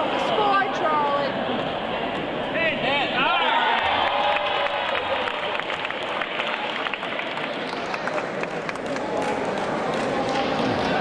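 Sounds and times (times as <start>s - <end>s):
audience applauding and cheering: 3.2s - 11.0s.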